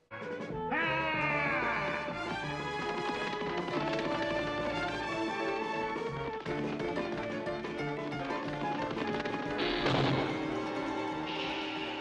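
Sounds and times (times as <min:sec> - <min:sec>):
background music with sustained notes: 0:00.0 - 0:12.0.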